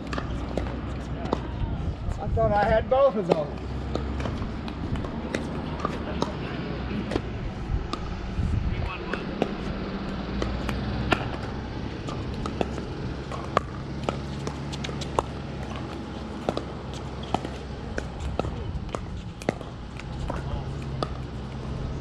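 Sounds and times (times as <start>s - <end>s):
pickleball paddle pops: 10.4s - 16.6s.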